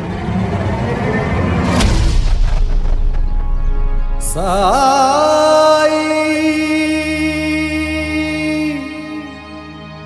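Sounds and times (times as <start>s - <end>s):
whoosh: 0.0s - 3.9s
dramatic background score: 0.0s - 10.0s
deep booming hit: 1.6s - 4.3s.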